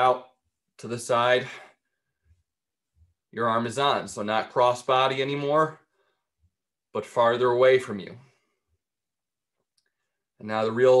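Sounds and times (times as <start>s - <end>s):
man speaking: 0.0s - 1.8s, 3.3s - 5.8s, 6.9s - 8.4s, 10.4s - 11.0s.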